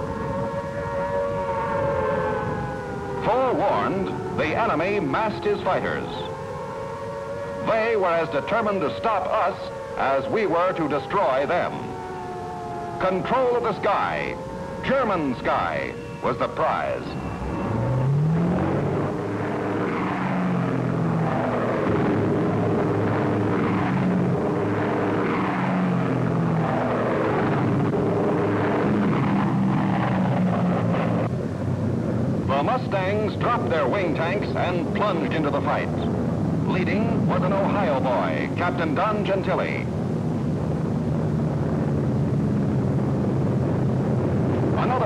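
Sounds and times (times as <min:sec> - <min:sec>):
propeller plane engines droning: 0:00.0 - 0:45.0.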